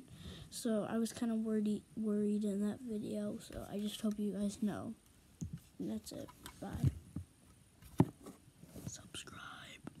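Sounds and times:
boy whispering: 8.8 - 9.9.

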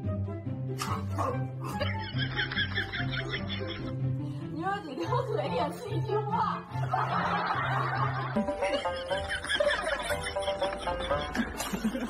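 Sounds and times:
background music: 0.0 - 12.0
woman laughing: 7.6 - 12.0.

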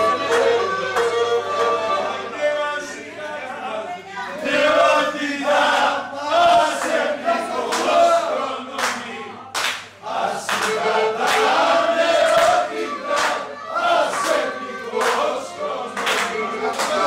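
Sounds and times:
people singing along: 0.0 - 17.0.

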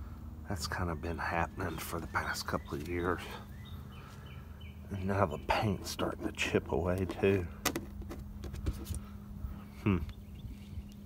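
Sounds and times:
steady low hum: 0.0 - 11.0
man murmuring: 9.8 - 10.1.

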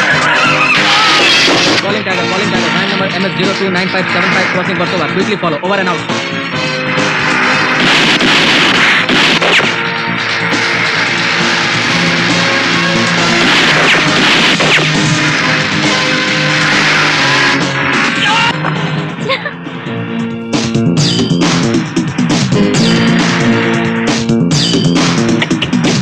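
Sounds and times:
loud noisy sound effects: 0.0 - 19.1, 20.6 - 26.0
film score low notes: 1.7 - 26.0
sharp hits: 6.0 - 18.4.

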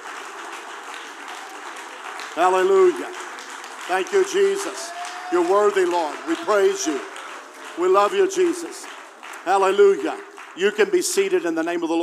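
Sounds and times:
congregation applauding: 0.0 - 12.0.

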